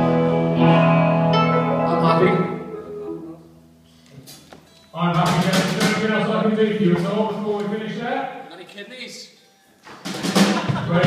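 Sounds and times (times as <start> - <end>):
live band with strummed guitars: 0.0 - 6.1.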